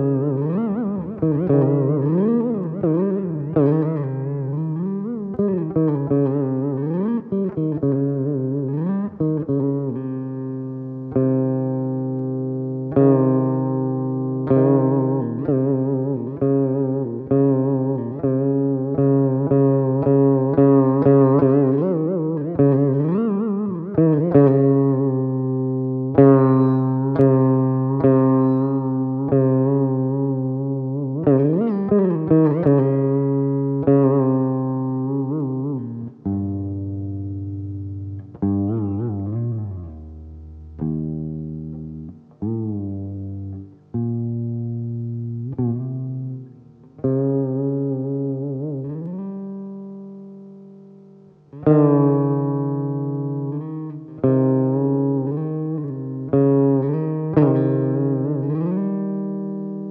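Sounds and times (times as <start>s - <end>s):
plucked veena notes bending: 0.0s - 59.9s.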